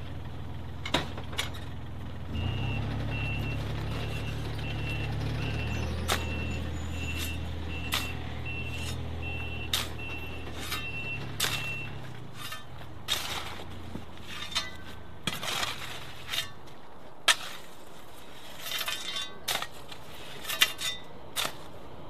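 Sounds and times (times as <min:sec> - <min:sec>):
diesel engine revving: 0:00.0 - 0:16.1
spade striking and scraping soil: 0:00.8 - 0:01.8, 0:03.3 - 0:22.0
reversing alarm beeps: 0:02.3 - 0:12.0.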